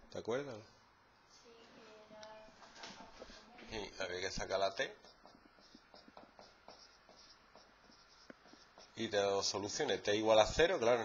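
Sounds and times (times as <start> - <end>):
marker scratching on whiteboard: 2.6 - 3.5, 4.4 - 11.0.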